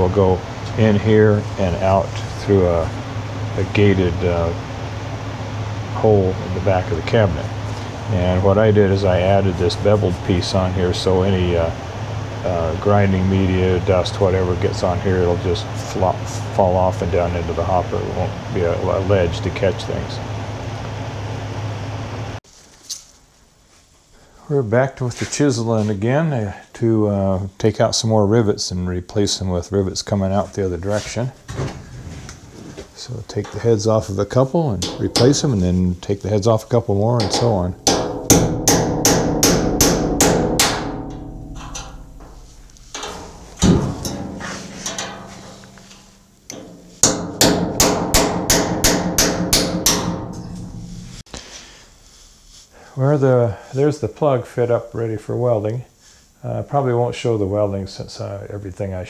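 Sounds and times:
low machine hum: 0:00.0 - 0:22.4, 0:33.0 - 0:51.3
steel cabinet ringing: 0:34.7 - 0:36.0, 0:37.1 - 0:51.2
hammer striking chisel: 0:37.2 - 0:45.9, 0:46.5 - 0:51.2.

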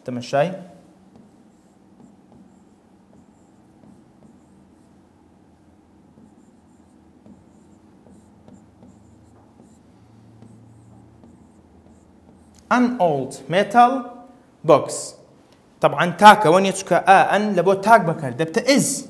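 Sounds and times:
pen scratching on whiteboard: 0:00.8 - 0:12.7.

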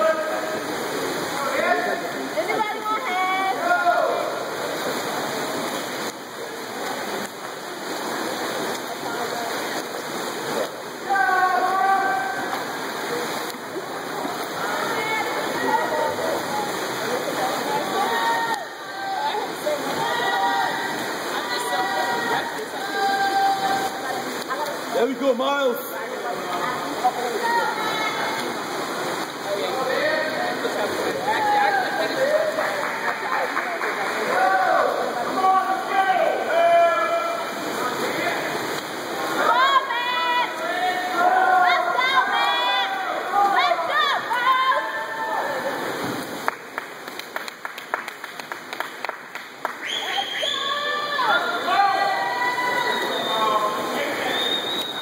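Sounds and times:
swimmers splashing water: 0:00.0 - 0:55.0.

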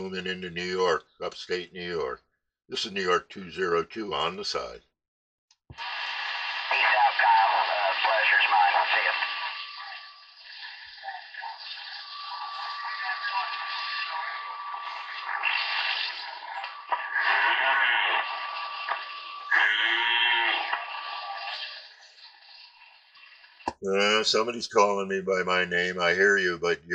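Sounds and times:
tinny radio voices: 0:00.0 - 0:04.8, 0:05.8 - 0:22.1, 0:23.8 - 0:26.9
radio static hiss: 0:05.8 - 0:26.9.

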